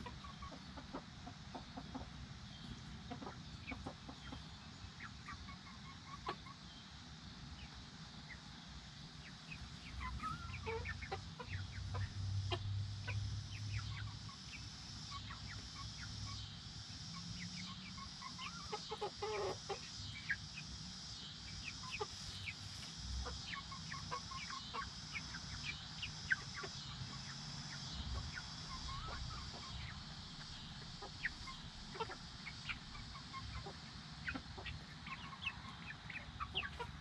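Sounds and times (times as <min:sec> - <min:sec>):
hens and chicks clucking: 0:00.0 - 0:37.0.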